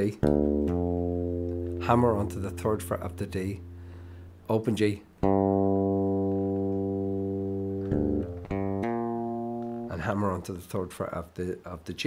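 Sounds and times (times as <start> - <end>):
fretless bass guitar notes: 0.0 - 10.6.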